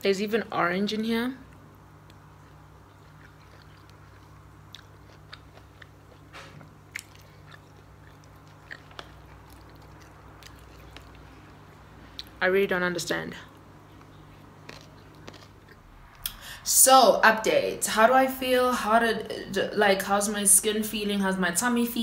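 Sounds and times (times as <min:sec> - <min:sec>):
low steady hum: 0:00.0 - 0:22.0
person chewing crunchy food: 0:02.0 - 0:12.4, 0:13.5 - 0:16.4.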